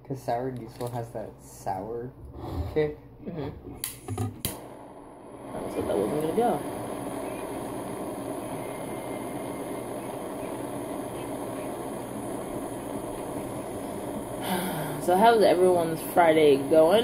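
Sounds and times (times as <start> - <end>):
butane torch hissing: 3.8 - 17.0.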